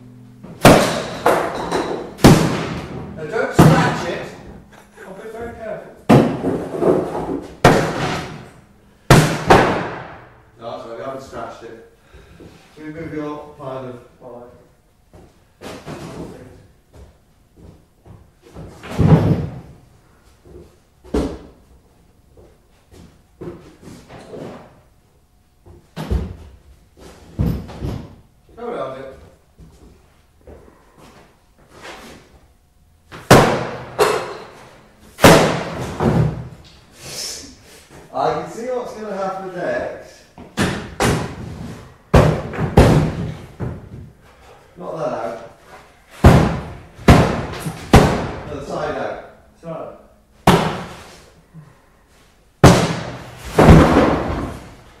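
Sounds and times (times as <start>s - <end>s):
sledgehammer striking piano: 0.4s - 4.6s, 7.6s - 10.4s
sledgehammer smashing piano: 0.5s - 4.3s, 6.1s - 8.5s, 9.1s - 10.3s, 33.2s - 34.5s, 35.2s - 36.5s, 40.6s - 43.8s, 46.2s - 48.6s, 52.6s - 54.8s.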